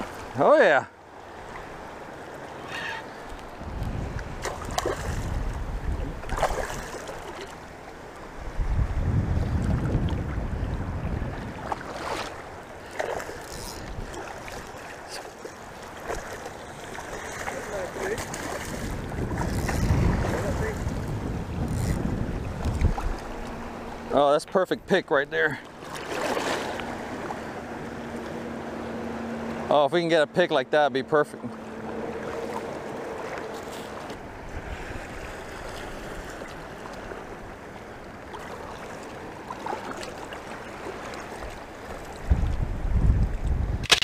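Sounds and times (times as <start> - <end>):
choppy shallow water: 0.0 - 44.0
wind buffeting microphone: 3.5 - 7.2, 8.3 - 12.6, 16.1 - 24.1, 41.9 - 44.0.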